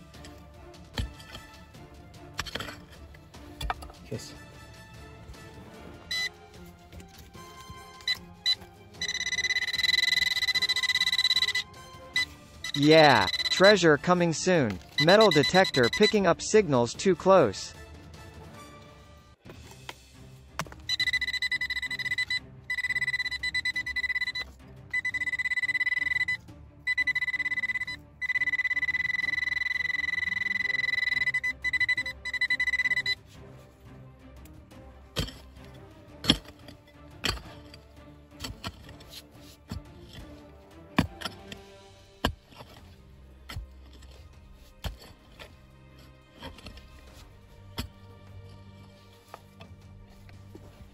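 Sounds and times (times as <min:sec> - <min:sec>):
metal detector beeping: 0:06.1 - 0:06.3, 0:07.8 - 0:16.4, 0:20.8 - 0:33.2.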